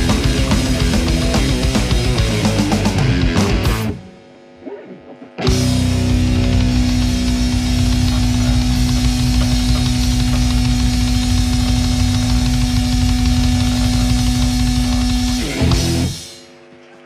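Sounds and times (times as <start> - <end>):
rapid drumming: 0.0 - 4.0, 5.4 - 16.5
distorted guitar: 0.0 - 17.0.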